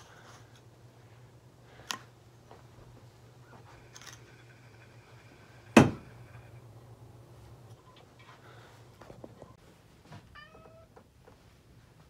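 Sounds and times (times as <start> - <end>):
cat meowing: 10.4 - 10.9.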